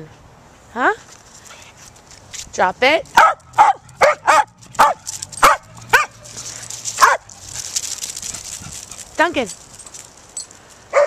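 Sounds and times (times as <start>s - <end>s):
small dog barking: 3.2s - 6.3s, 7.0s - 7.3s.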